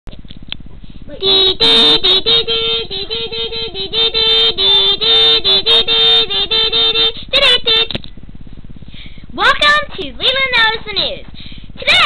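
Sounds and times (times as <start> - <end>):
girl humming a wordless tune: 1.1 - 7.9.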